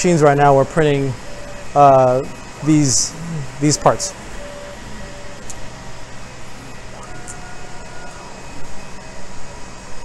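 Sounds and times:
shop ventilation: 0.0 - 10.0
stepper motors whining: 0.0 - 10.0
three d printer machine hum: 0.0 - 10.0.

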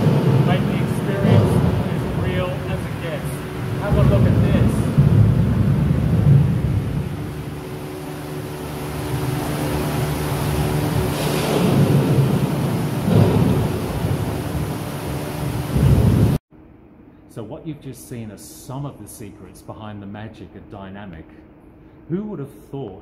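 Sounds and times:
rushing water and waves: 0.0 - 16.4
thunder rumbling: 0.0 - 16.4
faint machine hum: 0.0 - 23.0.

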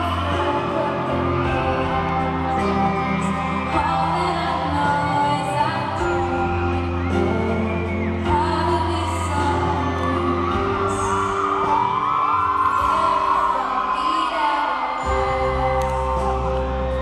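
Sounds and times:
audience whoops and cheers: 0.0 - 17.0
woman singing pop ballad: 0.0 - 17.0.

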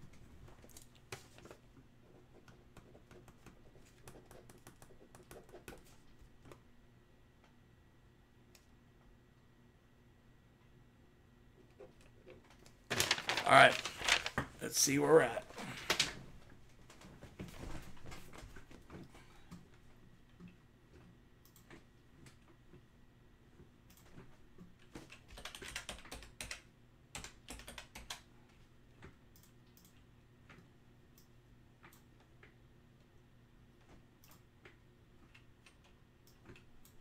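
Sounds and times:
keyboard typing: 25.0 - 28.3.

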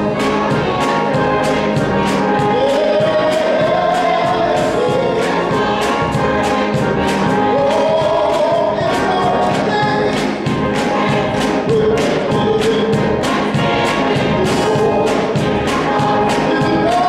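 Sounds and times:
gospel choir singing: 0.0 - 17.0
hands clapping on the beat: 0.0 - 17.0
organ accompaniment: 0.0 - 17.0
man singing solo: 7.5 - 10.2, 16.0 - 17.0.

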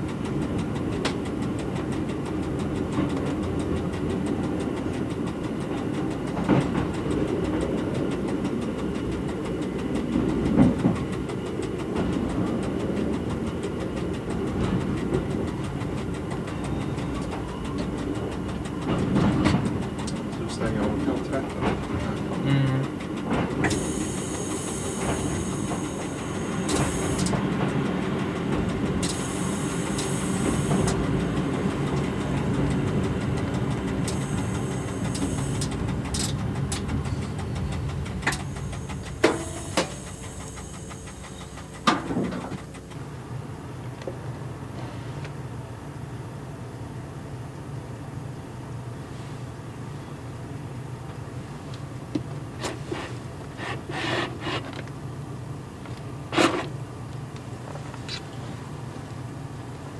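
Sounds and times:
wheels clicking over rail joints: 0.0 - 44.6, 51.0 - 59.9
diesel railcar engine running: 0.0 - 59.9.

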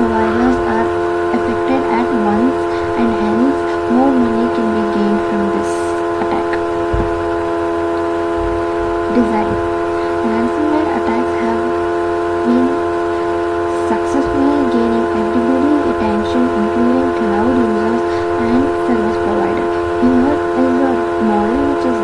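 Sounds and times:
person speaking: 0.0 - 6.8, 9.0 - 11.8, 12.4 - 22.0
loud steady hum: 0.0 - 22.0.

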